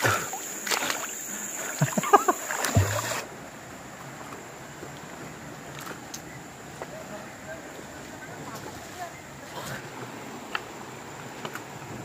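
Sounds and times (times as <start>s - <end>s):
water flowing over rocks: 0.0s - 12.0s.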